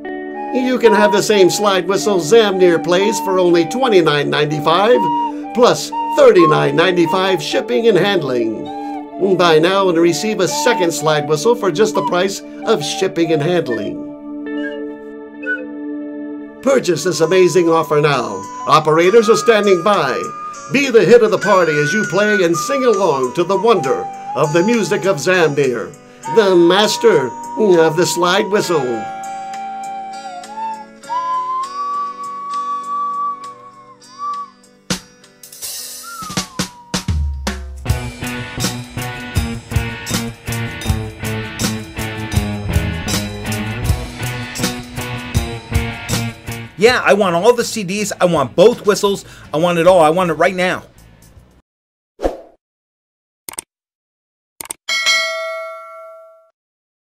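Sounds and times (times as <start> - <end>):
slide whistle melody: 0.2 - 16.0, 16.7 - 34.8, 35.6 - 38.4
backing music with light percussion: 16.8 - 47.5
notification bell ding: 54.9 - 56.5.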